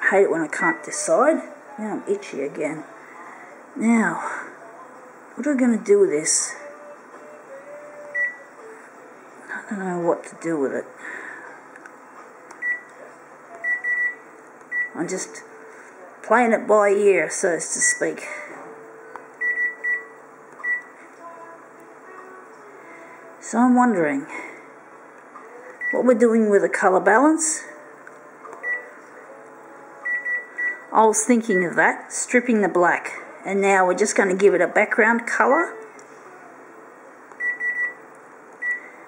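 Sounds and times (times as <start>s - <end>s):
steady background hum: 0.0s - 39.0s
photocopier touchscreen beeps: 12.6s - 12.9s, 13.6s - 15.0s, 19.4s - 21.0s, 28.6s - 28.9s, 30.0s - 30.9s, 37.4s - 38.0s, 38.6s - 38.9s
touchscreen key-press beep: 19.4s - 20.9s, 37.4s - 38.0s.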